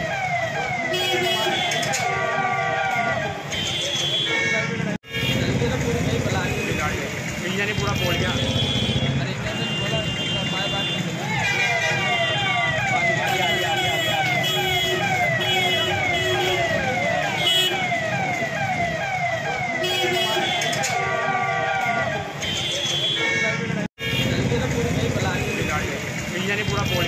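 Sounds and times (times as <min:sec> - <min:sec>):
electronic siren wailing: 0:00.0 - 0:03.4, 0:11.6 - 0:22.3
street traffic noise: 0:00.0 - 0:27.0.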